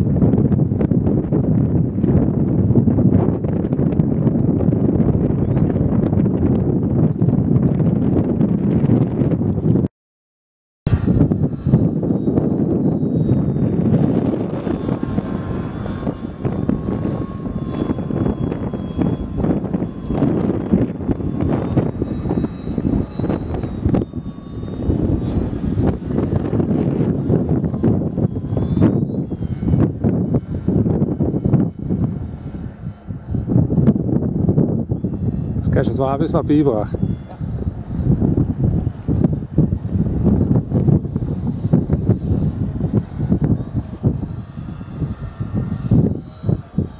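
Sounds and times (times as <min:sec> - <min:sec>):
model plane motor whine: 0:00.0 - 0:09.9, 0:10.9 - 0:46.9
wind rumble on microphone: 0:00.0 - 0:09.9, 0:10.9 - 0:46.9.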